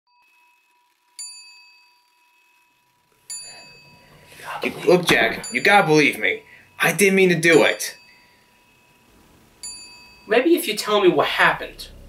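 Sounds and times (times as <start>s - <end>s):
small bell ringing: 0.2s - 4.4s, 5.3s - 10.6s.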